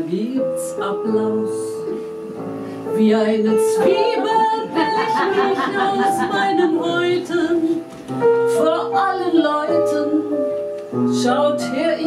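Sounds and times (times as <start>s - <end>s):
woman singing: 0.0s - 2.2s, 2.9s - 12.0s
piano chords: 0.0s - 12.0s.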